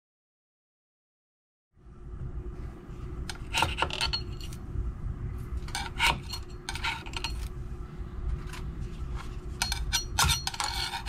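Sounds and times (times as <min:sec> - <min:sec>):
metal scraper scraping printer bed: 0:05.6 - 0:07.5, 0:09.6 - 0:11.0.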